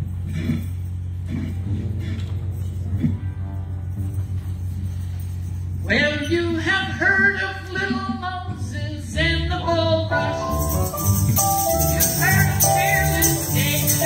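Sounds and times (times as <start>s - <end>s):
tambourine jingling: 0.0s - 7.6s, 10.2s - 14.0s
low steady hum: 0.0s - 14.0s
gospel band playing: 5.9s - 14.0s.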